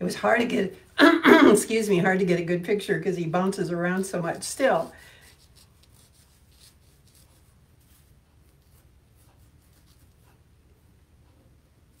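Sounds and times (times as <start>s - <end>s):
ink pen scratching on paper: 4.4s - 10.4s.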